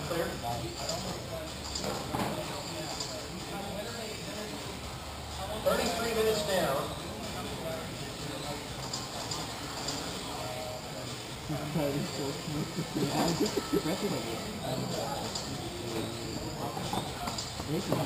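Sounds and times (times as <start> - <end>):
hall background noise: 0.0 - 18.0
people talking: 0.0 - 18.0.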